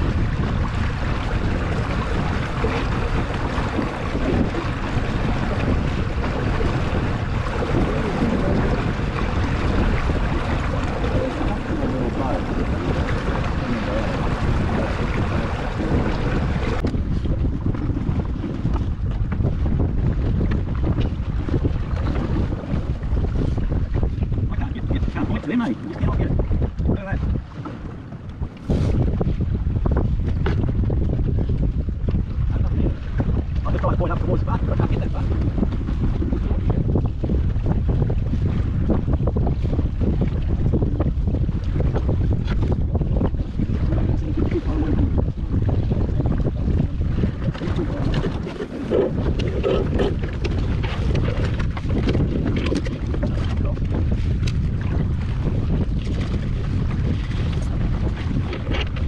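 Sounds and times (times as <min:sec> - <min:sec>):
water splashing along a boat hull: 0:00.0 - 0:59.0
wind buffeting microphone: 0:00.0 - 0:59.0.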